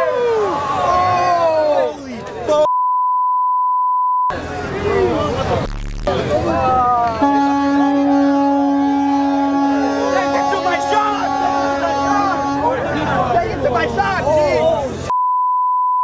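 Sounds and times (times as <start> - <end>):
crowd voices: 0.0 - 2.7, 4.3 - 15.1
censor bleep: 2.7 - 4.3, 15.1 - 16.0.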